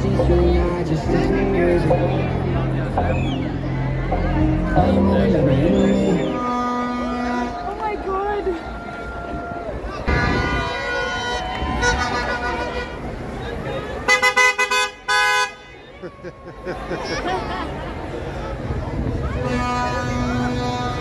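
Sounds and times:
street crowd voices: 0:00.0 - 0:21.0
car horns honking: 0:04.6 - 0:08.4, 0:10.0 - 0:15.9, 0:19.3 - 0:21.0.

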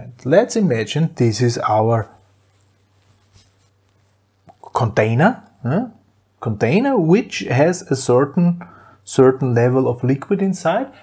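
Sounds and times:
paper rustling: 0:02.1 - 0:04.2.

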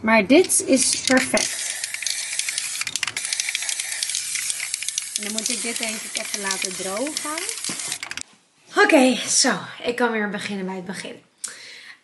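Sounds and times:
aerosol spray can hissing: 0:00.8 - 0:08.2.

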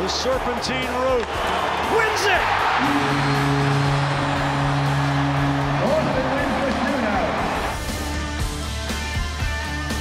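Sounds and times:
crowd cheering: 0:00.0 - 0:08.2
rock guitar music: 0:02.6 - 0:10.0
arena goal horn low note: 0:02.8 - 0:06.9.

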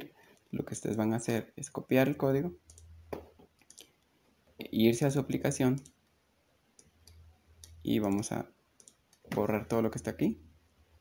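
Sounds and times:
man speaking: 0:00.0 - 0:02.6, 0:04.6 - 0:06.0, 0:07.7 - 0:08.6, 0:09.3 - 0:10.5
faint irregular clicks: 0:02.6 - 0:04.2, 0:05.7 - 0:09.4.

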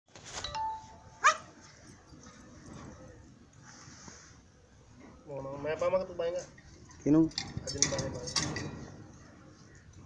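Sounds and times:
puppy yelping: 0:01.2 - 0:01.5.

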